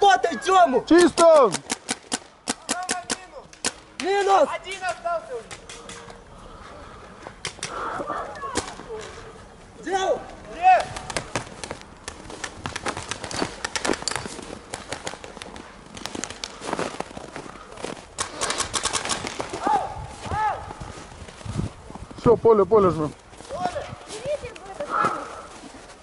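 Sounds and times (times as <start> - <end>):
paintball markers firing: 1.1 - 4.3, 10.8 - 16.5, 18.2 - 19.6.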